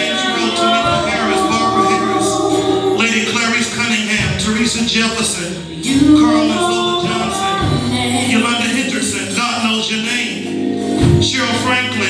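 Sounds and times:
man singing gospel song: 0.0 - 12.0.

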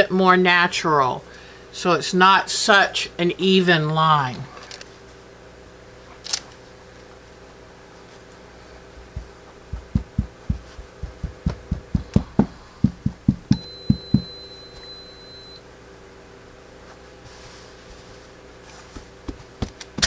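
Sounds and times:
glue bottle dabbing on fabric: 9.8 - 12.2
faint high steady tone: 13.3 - 15.7.

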